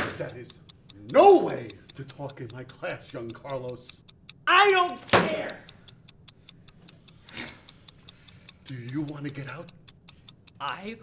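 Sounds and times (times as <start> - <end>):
clock-like ticking: 0.0 - 11.0.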